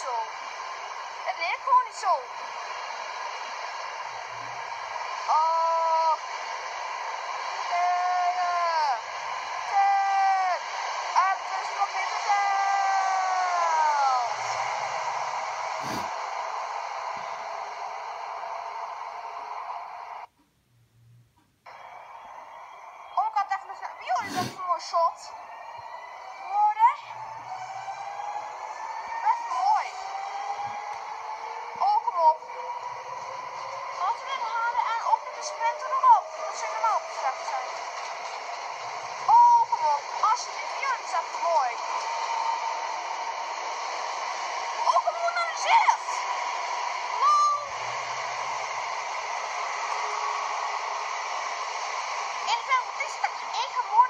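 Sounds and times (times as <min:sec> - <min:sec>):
electric train whine: 0:00.0 - 0:20.3, 0:21.0 - 0:54.0.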